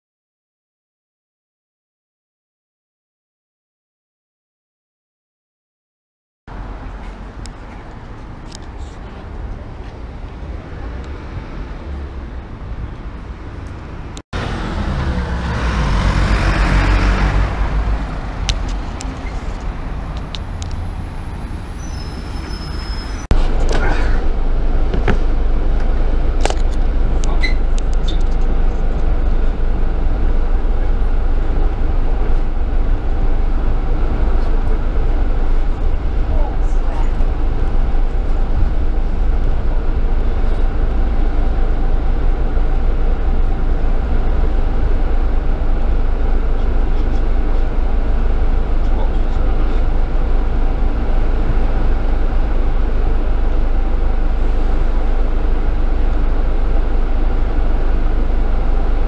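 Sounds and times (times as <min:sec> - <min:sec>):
bus engine rumble: 0:06.5 - 0:59.0.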